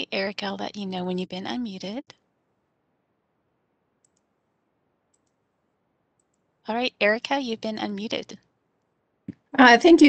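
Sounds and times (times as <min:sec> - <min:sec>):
faint quick clicks: 0:04.0 - 0:04.3.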